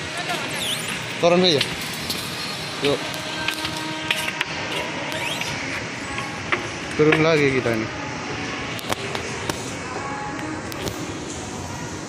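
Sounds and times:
steady hall hum: 0:00.0 - 0:12.0.

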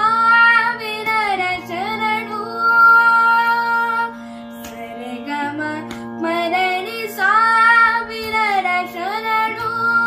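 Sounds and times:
steady drone: 0:00.0 - 0:10.0.

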